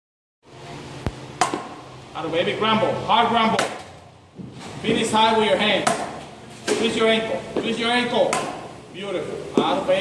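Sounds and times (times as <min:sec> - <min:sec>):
bat hitting ball: 0:01.4 - 0:01.8, 0:03.5 - 0:04.0, 0:05.8 - 0:08.8.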